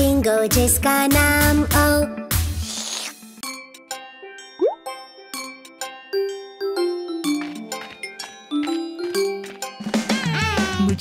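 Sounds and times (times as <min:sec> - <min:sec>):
light children's music: 0:00.0 - 0:11.0.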